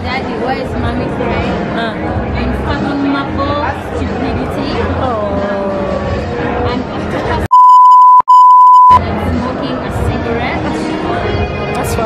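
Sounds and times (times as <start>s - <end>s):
high-pitched censor bleep: 7.5s - 9.0s.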